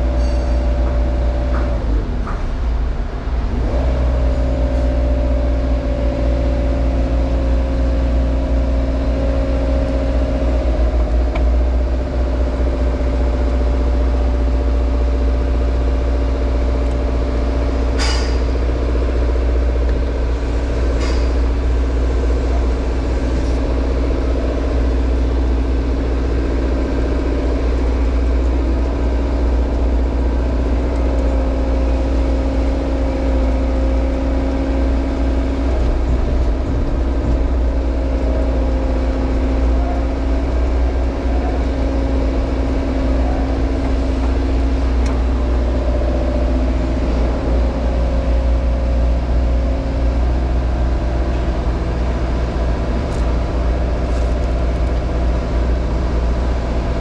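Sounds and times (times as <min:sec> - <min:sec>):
diesel engine humming and whining: 0:00.0 - 0:57.0.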